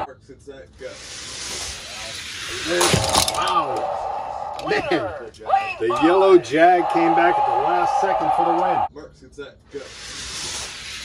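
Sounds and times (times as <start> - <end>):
toy cars rolling down plastic track: 0.9 - 3.8, 9.8 - 11.0.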